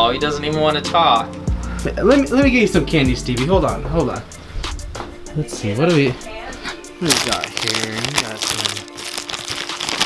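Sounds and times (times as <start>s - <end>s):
background music: 0.0s - 10.0s
plastic wrappers crinkling: 7.0s - 10.0s.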